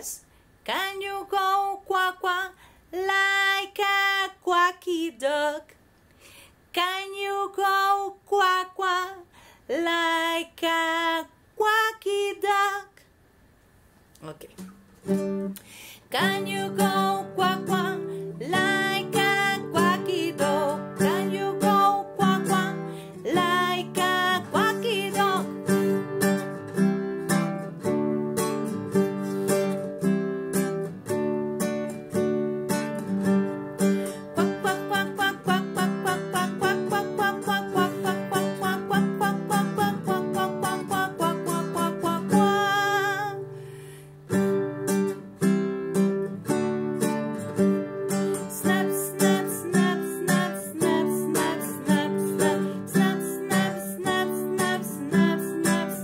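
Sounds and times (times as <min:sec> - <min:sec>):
woman singing: 0:00.0 - 0:05.8, 0:06.7 - 0:13.0, 0:16.1 - 0:26.4, 0:34.0 - 0:43.6, 0:48.1 - 0:56.0
classical guitar strumming: 0:14.5 - 0:56.0.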